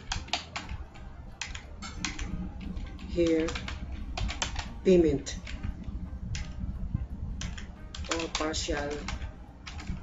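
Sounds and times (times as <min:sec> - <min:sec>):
computer keyboard typing: 0:00.0 - 0:05.7, 0:06.3 - 0:06.6, 0:07.4 - 0:10.0.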